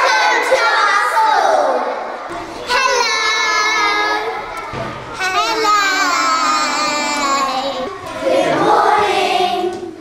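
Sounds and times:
girls singing together: 0.0s - 10.0s.

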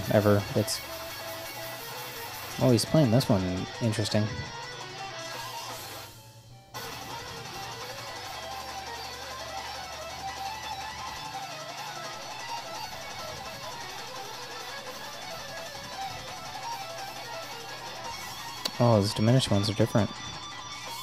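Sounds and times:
electric guitar solo: 0.0s - 21.0s.

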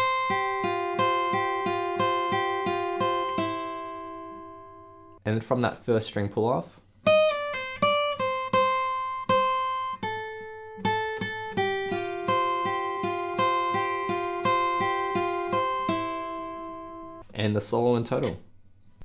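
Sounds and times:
acoustic guitar single picked notes: 0.0s - 5.2s, 7.0s - 17.3s.

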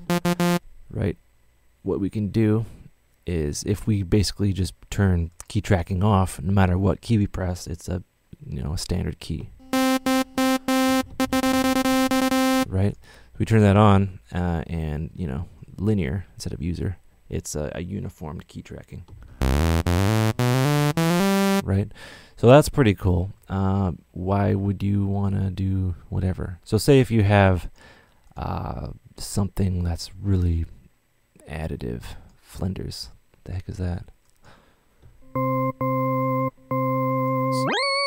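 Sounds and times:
synthesizer sawtooth tone: 0.0s - 0.6s, 9.6s - 12.7s, 19.4s - 21.6s, 35.2s - 38.0s.

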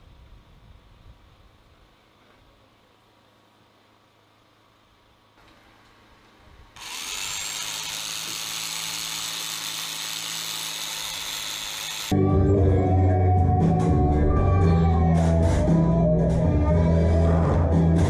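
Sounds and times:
electric drill drilling into wall: 6.8s - 12.2s.

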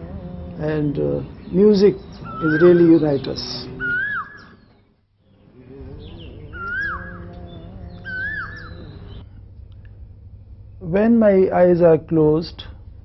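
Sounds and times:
bird chirping: 0.0s - 9.8s
fainter high bird chirps: 1.2s - 9.3s.

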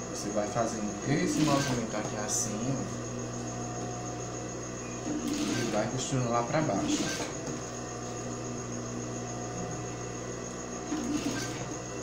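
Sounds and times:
sewing machine motor humming: 1.1s - 4.0s, 4.9s - 7.7s, 10.8s - 12.0s.

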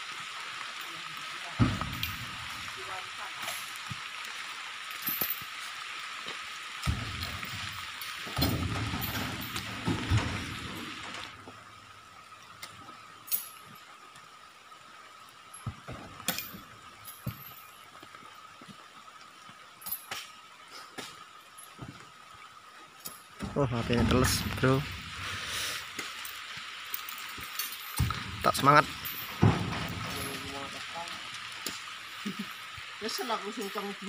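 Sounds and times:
heavy rain hissing: 0.0s - 34.0s.

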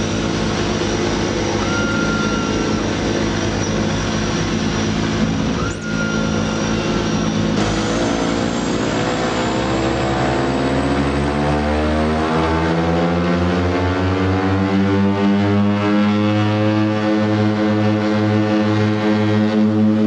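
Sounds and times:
turboprop engines running: 0.0s - 20.0s.

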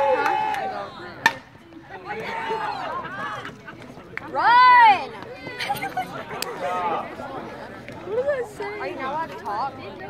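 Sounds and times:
spectators' voices: 0.0s - 10.0s.

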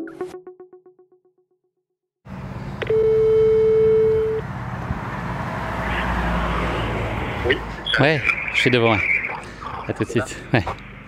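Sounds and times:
low car engine hum: 2.3s - 11.0s
phone ringback beep: 2.8s - 4.4s.

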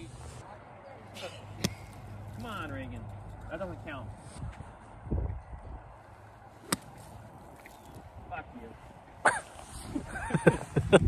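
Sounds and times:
golf club striking ball: 6.6s - 7.9s.

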